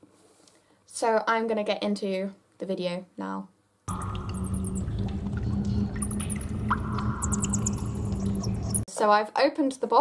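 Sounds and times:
echoing water drips: 3.9s - 8.8s
low cave rumble and hum: 3.9s - 8.9s.

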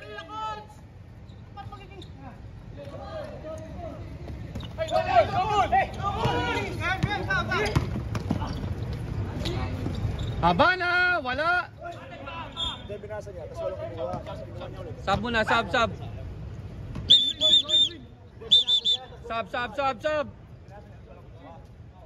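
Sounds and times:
players shouting: 2.8s - 8.6s
basketball bouncing on court: 6.2s - 8.9s.

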